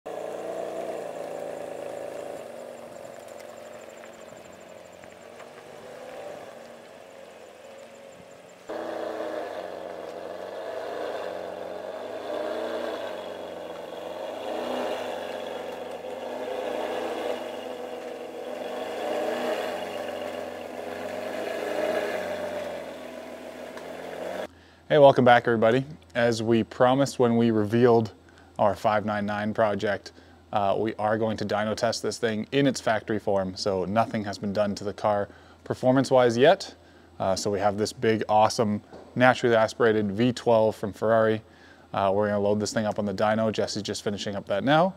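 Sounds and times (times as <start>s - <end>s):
car engine running at low revs: 0.1s - 24.5s.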